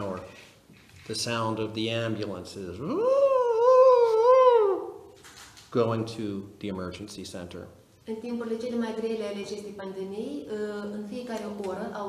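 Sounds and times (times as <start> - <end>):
man imitating siren: 2.8 - 5.1.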